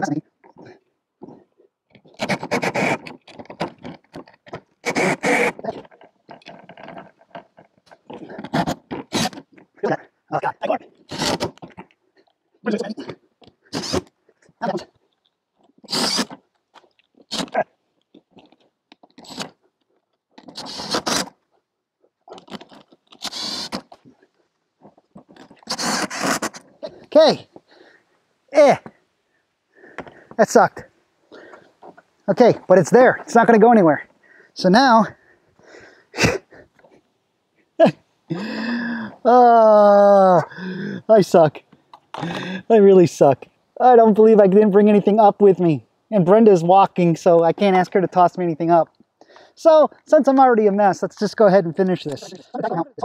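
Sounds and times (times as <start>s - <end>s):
cordless drill driving screws: 2.2s - 3.0s, 4.8s - 5.6s, 8.5s - 9.4s, 13.7s - 14.0s, 15.9s - 16.4s, 20.5s - 21.3s, 23.2s - 23.9s, 25.6s - 26.6s.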